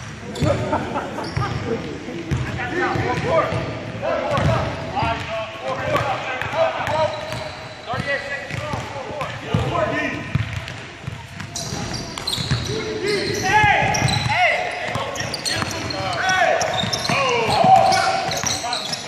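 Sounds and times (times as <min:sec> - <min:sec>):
basketball bouncing on wooden floor: 0:07.2 - 0:12.7.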